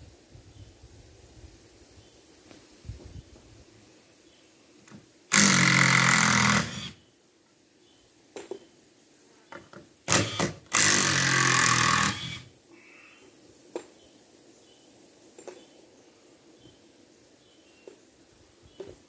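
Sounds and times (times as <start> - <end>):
power drill driving screws: 5.3 - 7.0, 10.1 - 12.5.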